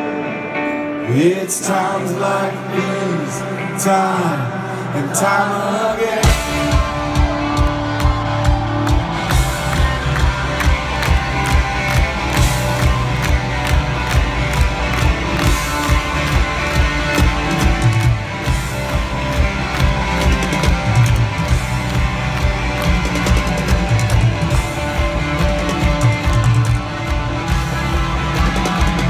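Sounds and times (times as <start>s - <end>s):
electric guitars: 0.0s - 29.0s
stadium crowd: 0.0s - 29.0s
driving drum kit: 6.2s - 29.0s.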